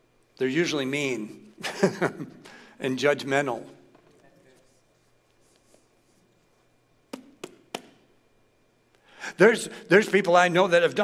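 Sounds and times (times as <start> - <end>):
sharp knocks: 7.1 - 8.0.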